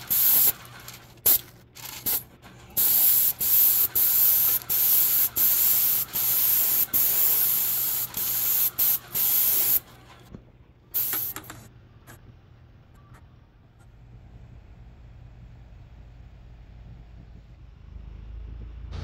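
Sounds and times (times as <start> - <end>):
paint spray gun hissing: 0.0 - 0.6, 2.8 - 9.8, 11.0 - 11.5.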